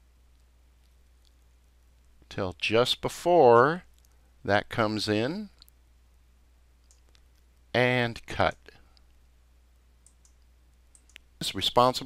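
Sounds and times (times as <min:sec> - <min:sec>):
computer mouse clicks: 0:06.8 - 0:07.2, 0:10.0 - 0:11.3.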